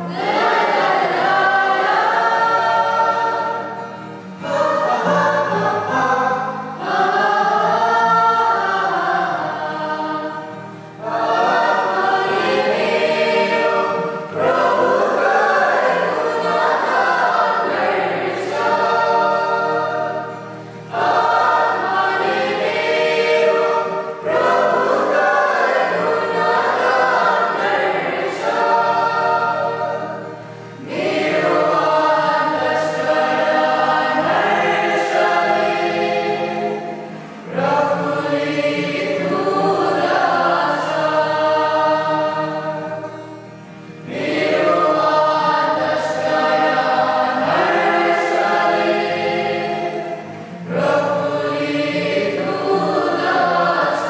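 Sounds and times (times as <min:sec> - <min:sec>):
acoustic guitar: 0:00.0 - 0:54.0
choir singing in harmony: 0:00.0 - 0:54.0.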